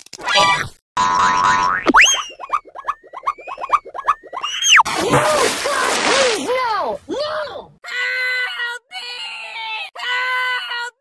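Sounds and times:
cartoon boing sound effects: 1.0s - 2.5s.

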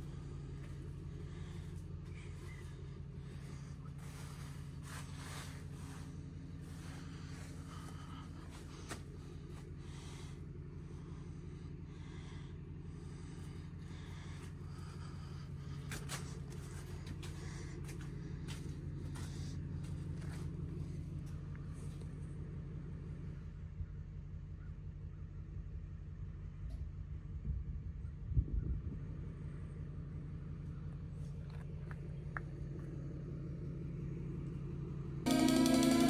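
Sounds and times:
engine idling hum: 0.0s - 36.0s
footsteps: 2.1s - 9.7s, 15.8s - 20.5s.

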